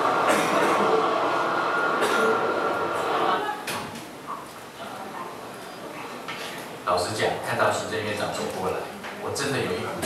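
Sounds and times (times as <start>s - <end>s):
loud noisy din: 0.0s - 3.7s.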